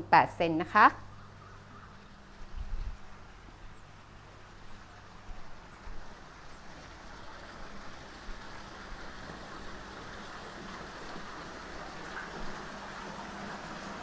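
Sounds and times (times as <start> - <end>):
water feature splashing: 0.0 - 14.0.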